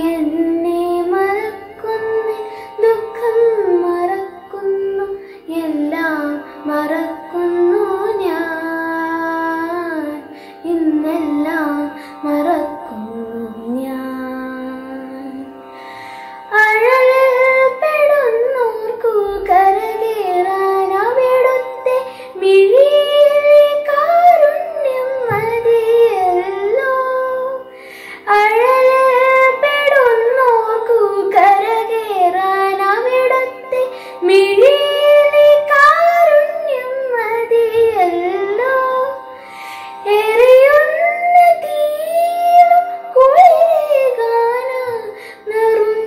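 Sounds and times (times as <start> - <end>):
girl singing devotional song: 0.0 - 46.0.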